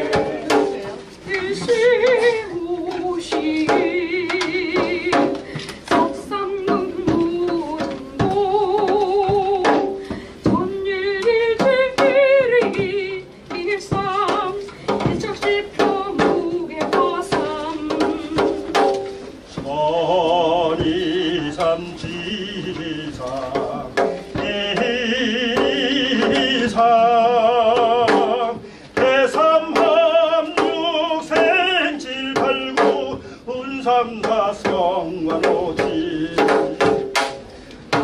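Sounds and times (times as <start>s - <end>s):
drum hits: 0.0s - 1.0s, 2.9s - 19.8s, 20.7s - 26.8s, 27.6s - 33.2s, 34.0s - 38.0s
person singing with vibrato: 0.0s - 38.0s.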